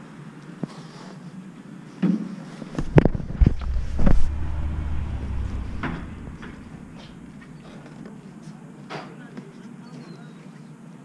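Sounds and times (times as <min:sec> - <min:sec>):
low rumble: 0:02.7 - 0:08.0.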